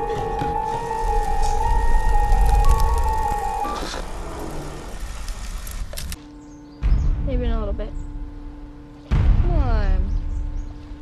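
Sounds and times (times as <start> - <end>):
deep bass rumble: 0.0 - 11.0
horror trailer music: 0.0 - 11.0
sudden deep hit: 6.8 - 8.5, 9.1 - 10.7.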